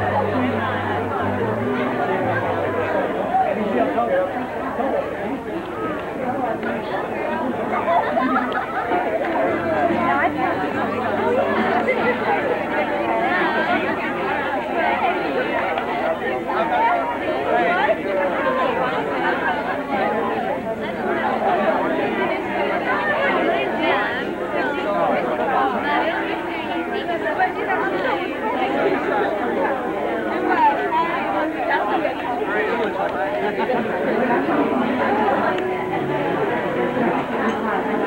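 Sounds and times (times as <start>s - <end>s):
crowd chatter: 0.0s - 38.0s.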